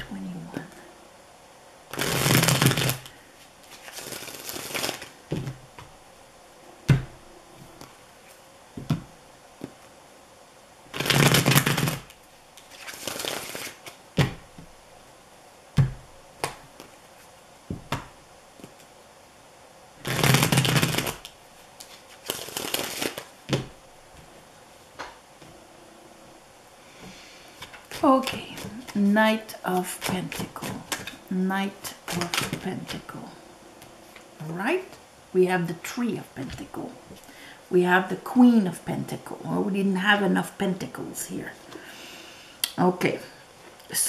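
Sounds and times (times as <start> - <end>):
cards shuffled by hand: 1.9 - 5.9, 10.9 - 14.4, 20.0 - 23.7, 27.6 - 29.1, 29.8 - 31.2, 31.9 - 33.1.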